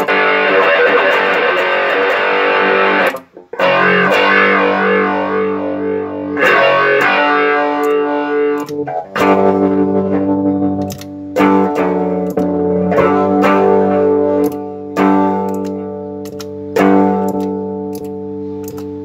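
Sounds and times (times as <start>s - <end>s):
electric guitar chords ringing: 0.0s - 19.0s.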